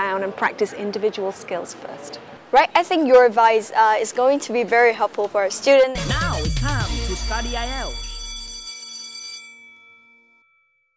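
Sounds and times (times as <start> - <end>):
jingle chord tones: 6.0 - 10.9.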